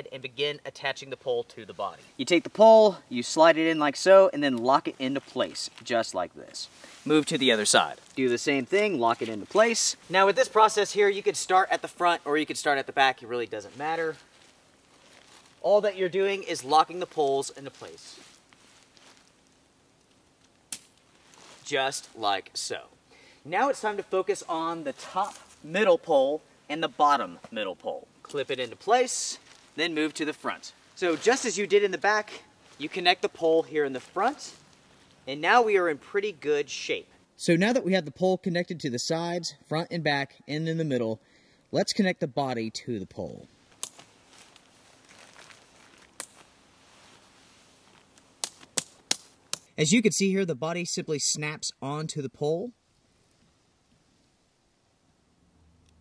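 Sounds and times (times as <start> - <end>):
tent pole clicking into place: 20.4 - 21.1, 43.7 - 44.7, 46.0 - 46.5, 48.0 - 49.7.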